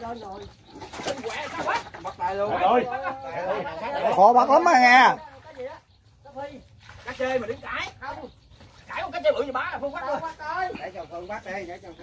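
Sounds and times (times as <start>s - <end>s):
voices calling out and talking: 0.0s - 12.0s.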